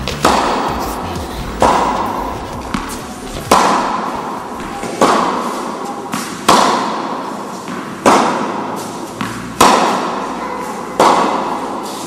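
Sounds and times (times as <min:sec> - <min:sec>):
tennis ball struck by racket: 0:00.0 - 0:00.7, 0:02.7 - 0:10.2.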